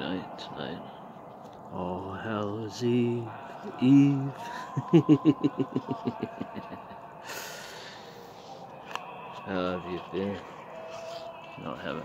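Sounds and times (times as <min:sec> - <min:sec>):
man laughing: 0:03.8 - 0:07.6.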